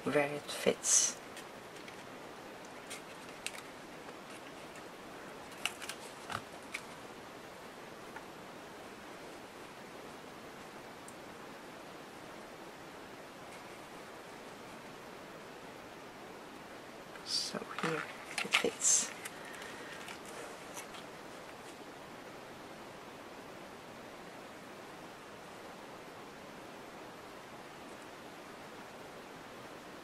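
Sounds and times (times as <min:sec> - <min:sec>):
faint steady hiss: 0:00.0 - 0:30.0
paper rustling and clicks: 0:01.3 - 0:04.9, 0:05.5 - 0:07.0, 0:17.7 - 0:21.1.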